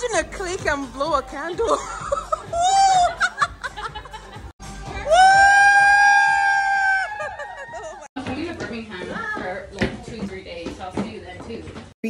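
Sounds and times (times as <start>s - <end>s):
background music: 0.0s - 9.6s
women laughing: 1.6s - 5.2s, 6.8s - 8.1s.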